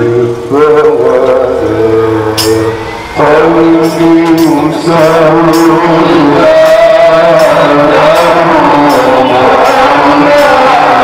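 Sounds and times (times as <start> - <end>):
men chanting into microphones: 0.0 - 11.0.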